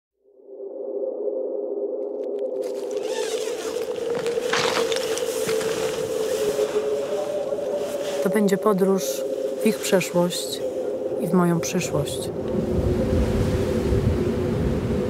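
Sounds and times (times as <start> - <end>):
droning film score tone: 0.4 - 15.0.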